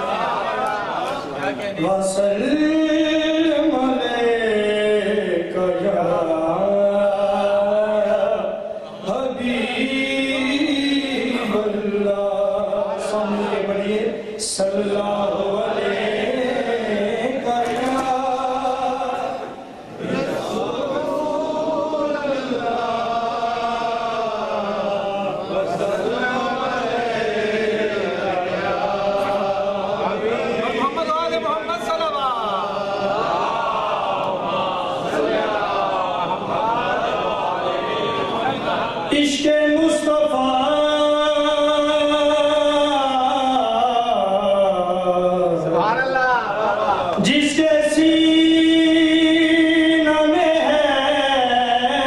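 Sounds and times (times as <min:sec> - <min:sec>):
man chanting devotional poem: 0:01.4 - 0:33.1, 0:38.9 - 0:52.0.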